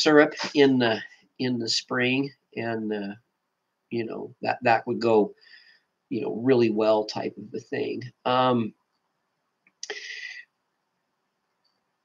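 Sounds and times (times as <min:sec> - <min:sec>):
man breathing: 0:05.4 - 0:06.0, 0:09.8 - 0:10.6.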